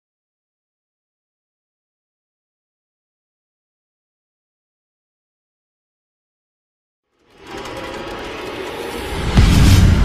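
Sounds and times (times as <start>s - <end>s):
production logo swell: 7.2s - 10.0s.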